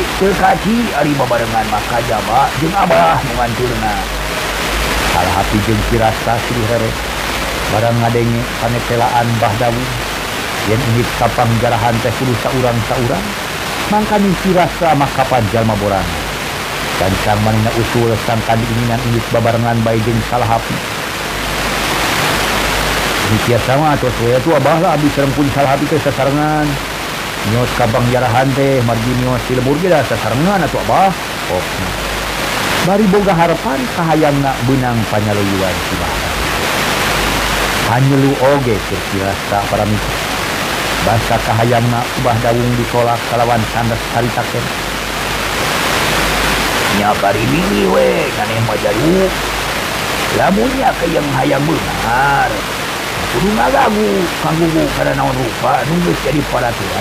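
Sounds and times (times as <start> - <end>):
person narrating: 0.0 - 4.4, 5.0 - 7.0, 7.7 - 16.4, 17.0 - 20.9, 23.2 - 26.8, 27.4 - 32.2, 32.8 - 36.6, 37.8 - 40.2, 41.0 - 44.8, 46.8 - 49.6, 50.2 - 57.0
loud rushing hiss: 0.0 - 57.0.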